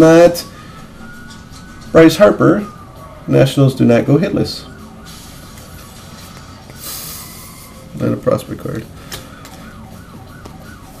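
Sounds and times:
faint siren wailing: 0.0s - 11.0s.

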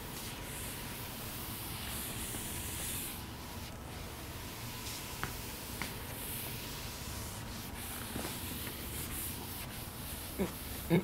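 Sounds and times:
cloth wiping a chalkboard: 0.0s - 11.0s.

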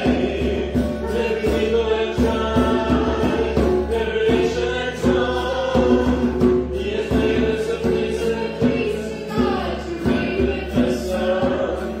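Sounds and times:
group singing a worship song: 0.0s - 12.0s
strummed acoustic guitar: 0.0s - 12.0s.

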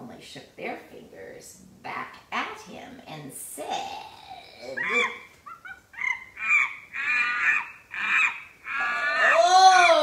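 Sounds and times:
woman imitating monkey calls: 4.6s - 10.0s.

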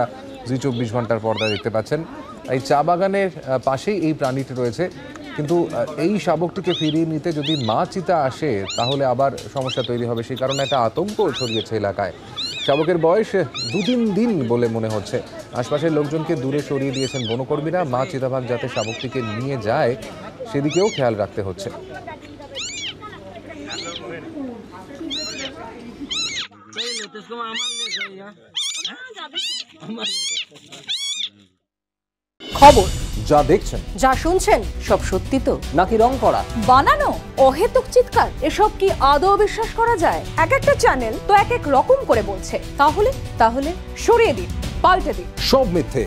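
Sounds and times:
man talking: 0.5s - 20.0s, 32.5s - 33.9s, 45.4s - 46.0s
leopard cub mewing: 0.6s - 1.8s, 6.6s - 7.9s, 8.5s - 14.1s, 16.8s - 17.5s, 18.7s - 19.4s, 20.6s - 21.1s, 22.5s - 24.1s, 25.0s - 31.5s.

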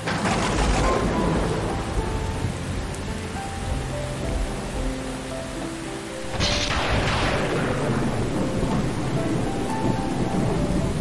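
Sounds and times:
low thunder rumble: 0.0s - 11.0s
soft piano notes: 0.0s - 11.0s
steady rain: 0.0s - 11.0s.

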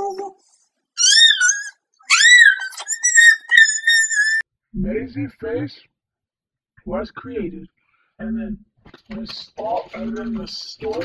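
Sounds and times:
high-pitched cries: 1.0s - 4.4s.

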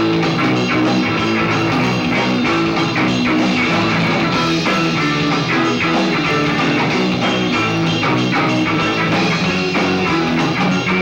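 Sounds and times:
electric guitar with rock band: 0.0s - 11.0s.

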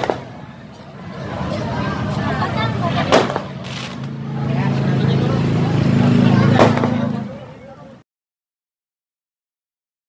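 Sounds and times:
crowd voices: 0.0s - 8.0s.

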